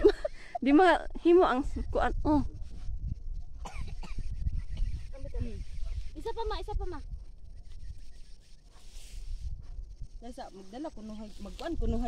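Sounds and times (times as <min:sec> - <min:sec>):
low uneven microphone rumble: 0:01.1 - 0:12.0.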